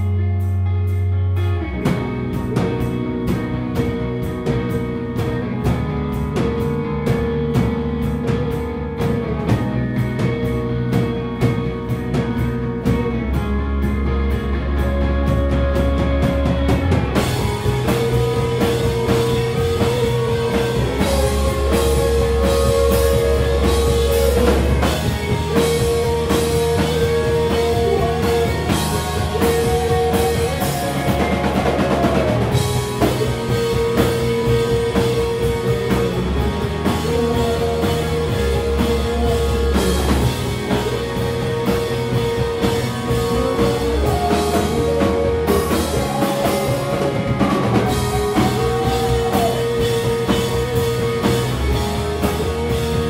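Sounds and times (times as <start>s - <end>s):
drums and cymbals: 0.0s - 53.0s
electric bass line: 0.0s - 53.0s
electric guitars: 0.0s - 53.0s.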